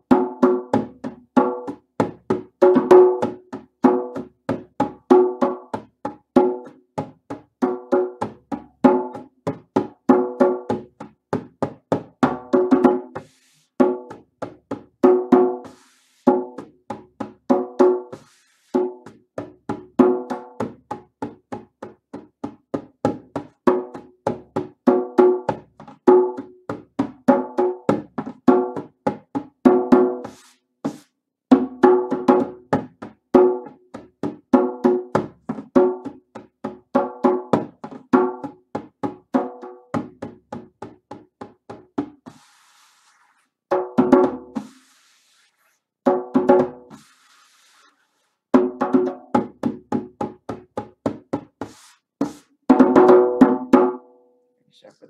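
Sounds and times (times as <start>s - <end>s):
djembe played with hands: 0.0s - 42.8s, 43.7s - 45.2s, 46.0s - 47.9s, 48.5s - 54.1s.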